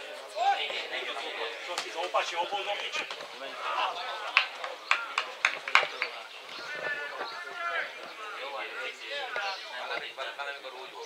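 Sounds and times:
murmured crowd voices: 0.0s - 11.0s
spectators clapping: 4.2s - 6.2s.

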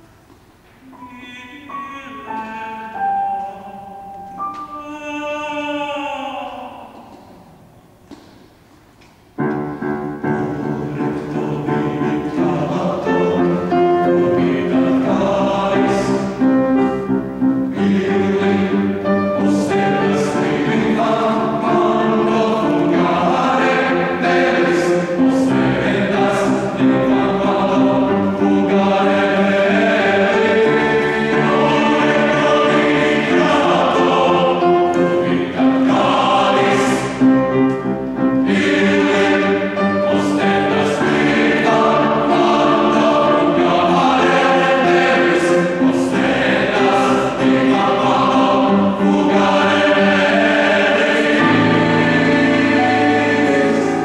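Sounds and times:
mixed choir singing: 10.2s - 54.0s.

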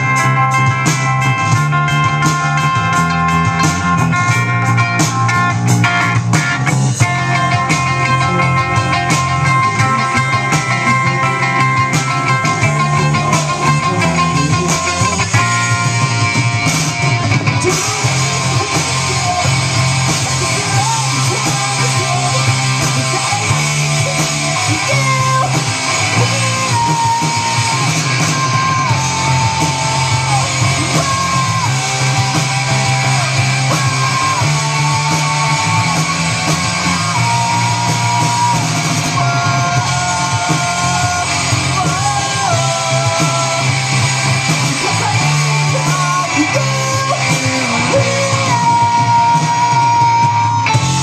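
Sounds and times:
bass guitar: 0.0s - 51.0s
drum kit: 0.0s - 51.0s
electric guitars: 0.0s - 51.0s
man singing and yelling: 0.0s - 51.0s.

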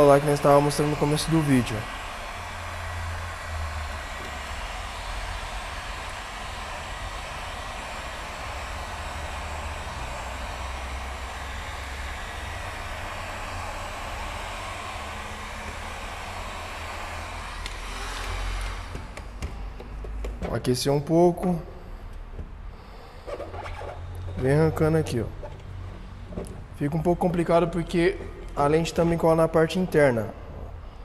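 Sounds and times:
heat gun running: 0.0s - 20.4s.

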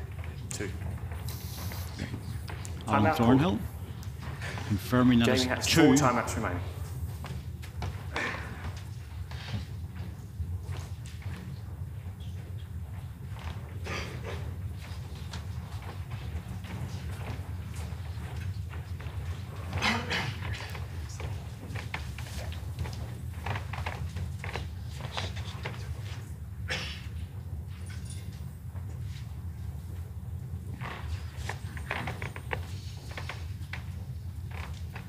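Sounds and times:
faint knocks and shuffles: 0.0s - 35.0s
steady low hum: 0.0s - 35.0s.

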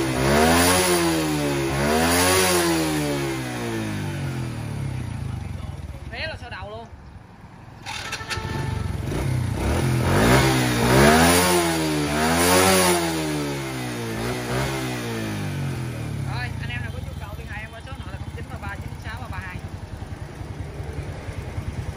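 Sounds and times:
motorcycle engine idling and revving: 0.0s - 21.9s.

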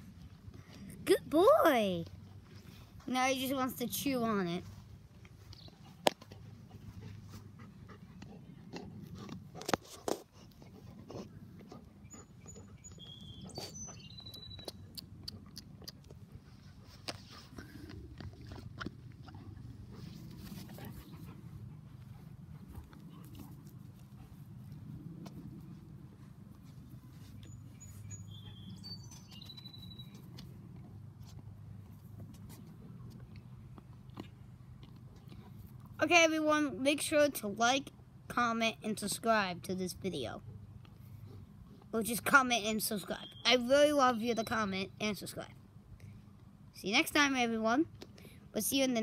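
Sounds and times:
dog chewing on a ball: 15.0s - 25.7s.

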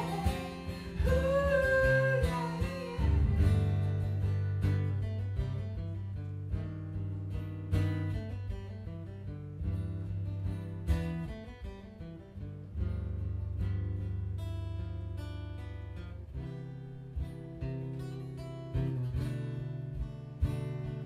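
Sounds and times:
man singing: 0.0s - 3.4s
acoustic guitar: 0.0s - 21.0s.

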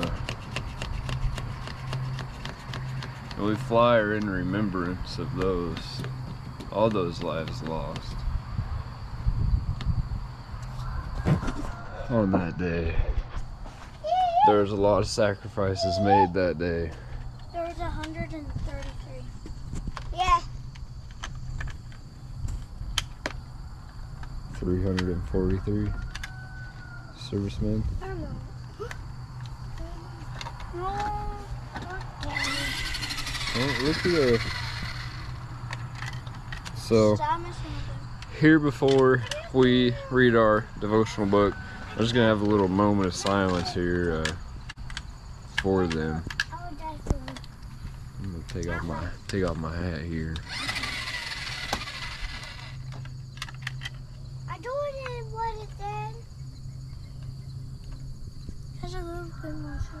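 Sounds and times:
insects droning: 0.0s - 60.0s
toy truck electric motor whining: 31.9s - 37.8s, 50.3s - 53.9s.

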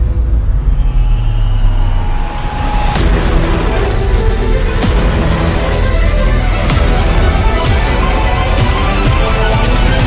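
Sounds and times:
deep rumble: 0.0s - 6.7s.

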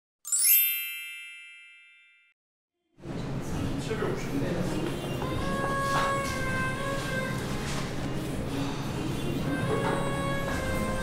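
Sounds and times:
bright chime with sparkle: 0.3s - 2.4s.

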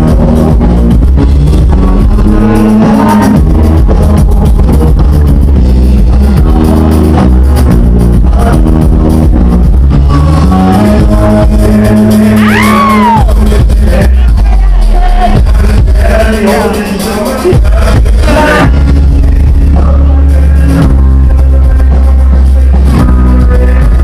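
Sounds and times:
deep steady bass: 0.0s - 24.0s
live band playing dance music: 0.0s - 24.0s.

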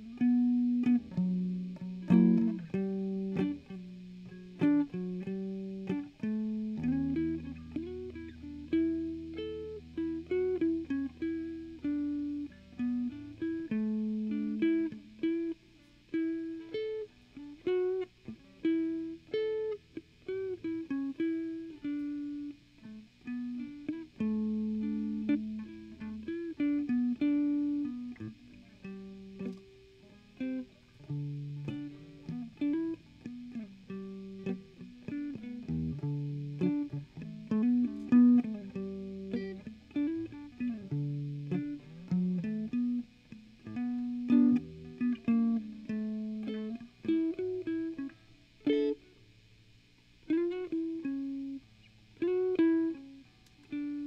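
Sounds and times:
electric guitar blues lead: 0.0s - 54.0s.

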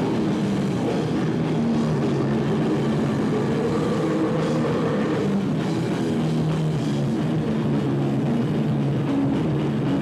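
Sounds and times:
rock band droning: 0.0s - 10.0s.

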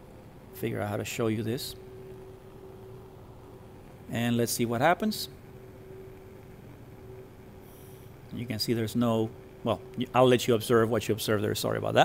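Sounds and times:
faint steady hiss: 0.0s - 12.0s
thin low hum: 0.0s - 12.0s.

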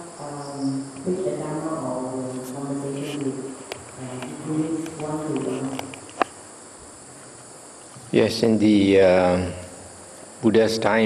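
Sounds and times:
woman speaking into a microphone: 0.0s - 5.9s
high-pitched whine: 0.0s - 11.0s.

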